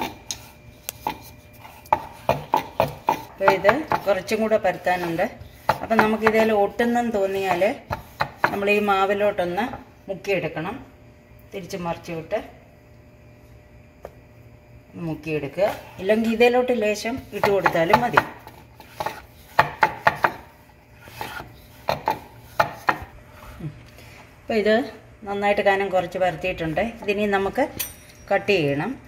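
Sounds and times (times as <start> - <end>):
rolling pin rubbing on dough: 0.0 - 8.9, 15.6 - 23.5
woman talking: 3.4 - 7.9, 8.5 - 10.9, 11.5 - 12.6, 14.9 - 18.3, 24.5 - 29.0
rolling pin knocking on board: 17.4 - 18.4, 19.0 - 20.4.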